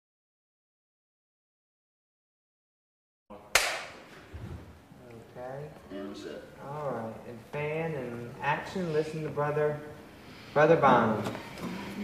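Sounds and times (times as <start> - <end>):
sharp clap: 3.5 - 4.1.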